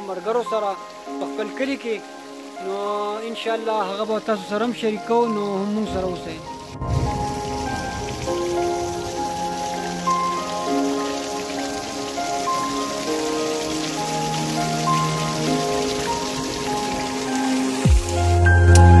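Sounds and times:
slow background music: 0.0 - 19.0
waterfall splashing into stream: 6.0 - 18.4.

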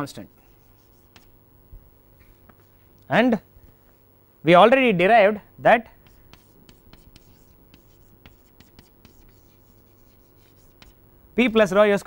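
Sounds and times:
chalk tapping and scratching: 0.4 - 1.4, 6.0 - 11.7.

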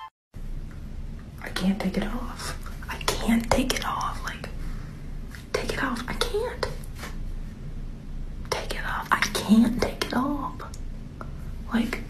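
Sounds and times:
person talking softly in a whisper: 1.4 - 4.6, 5.4 - 7.0, 8.5 - 10.8, 11.5 - 12.0.

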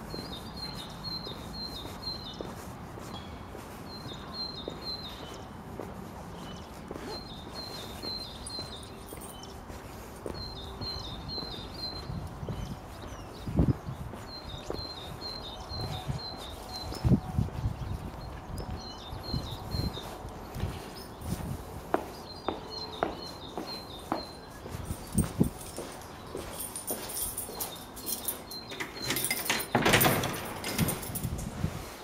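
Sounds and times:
footsteps on pavement: 0.0 - 29.1
small bird singing: 0.0 - 29.4.

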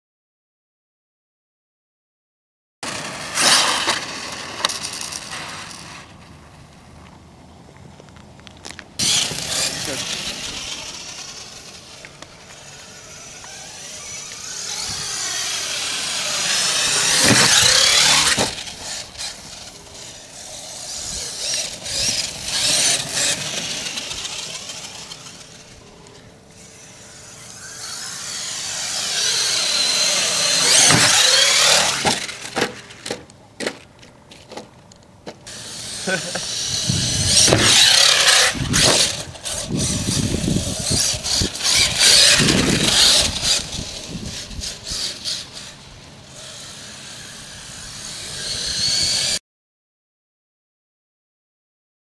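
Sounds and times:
electric rc truck motor whining: 2.8 - 6.8, 8.6 - 33.3, 35.5 - 49.4
tyres scrabbling on dirt: 2.8 - 46.7
toy truck tumbling knocks: 14.4 - 19.0, 29.3 - 34.7.

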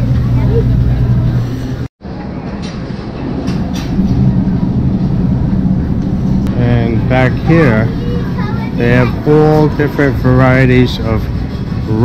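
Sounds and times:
electrical hum: 0.0 - 12.0.

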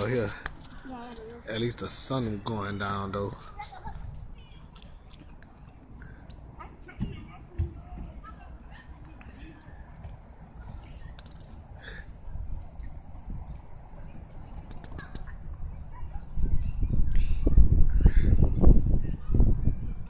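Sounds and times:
low rumbling on microphone: 9.6 - 20.0.

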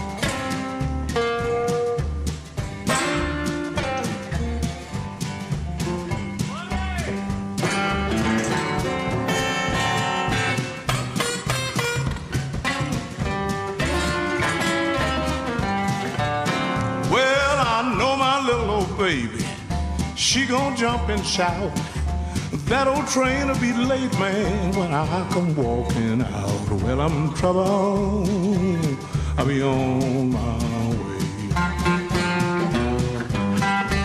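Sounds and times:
acoustic blues guitar: 0.0 - 34.0
person singing: 17.0 - 33.6.

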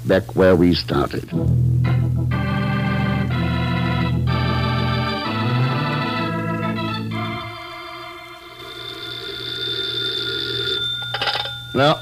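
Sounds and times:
telephone bell ringing: 7.5 - 12.0.

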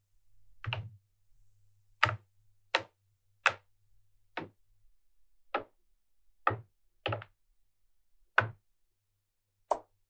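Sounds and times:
magnetic balls clicking together: 2.0 - 4.6.

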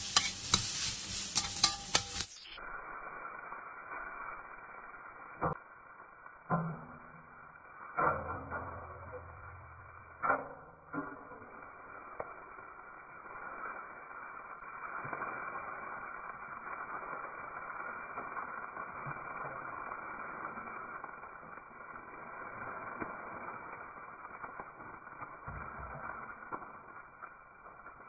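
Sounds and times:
metal spatula scraping wok: 0.0 - 2.5
food sizzling in hot oil: 0.0 - 28.0.

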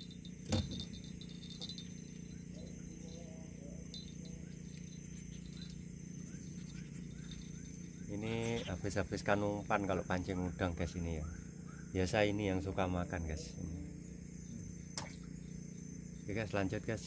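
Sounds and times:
faint metallic tinkles: 0.0 - 17.0
high insect drone: 0.0 - 17.0
low hum: 0.0 - 17.0.

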